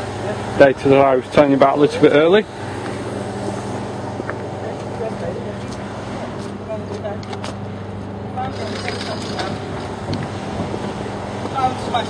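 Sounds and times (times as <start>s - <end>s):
outdoor background noise: 0.0s - 12.0s
steady low hum: 0.0s - 12.0s.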